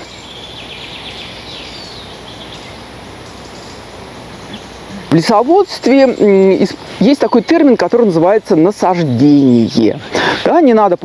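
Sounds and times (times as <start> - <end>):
faint bird singing: 0.0 - 11.0
steady background hiss: 0.0 - 11.0.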